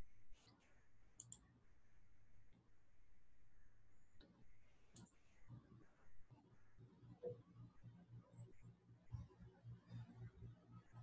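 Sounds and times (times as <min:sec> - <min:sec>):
computer mouse clicks: 0:01.2 - 0:01.4, 0:04.9 - 0:05.2.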